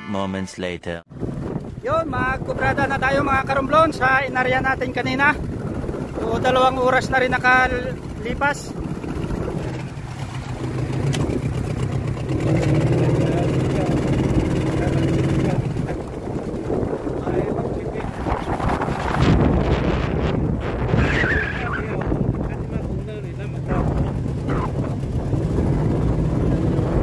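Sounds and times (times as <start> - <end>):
boat engine humming: 1.1 - 27.0.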